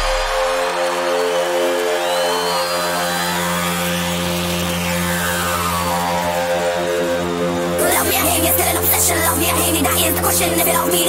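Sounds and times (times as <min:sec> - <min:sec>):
buzzing synth chord: 0:00.0 - 0:11.0.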